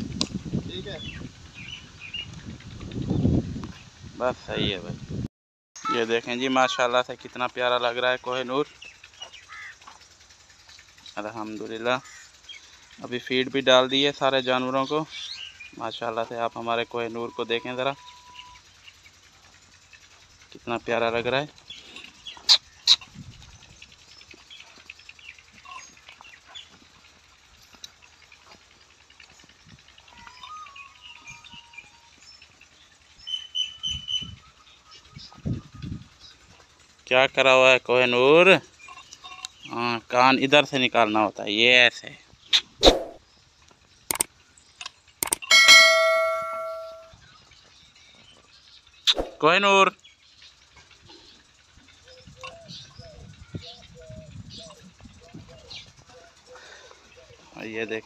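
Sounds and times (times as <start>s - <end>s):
sharp clicks: 44.1s - 46.3s
bell ding: 45.4s - 47.1s
faint bird chirps: 45.5s - 49.3s.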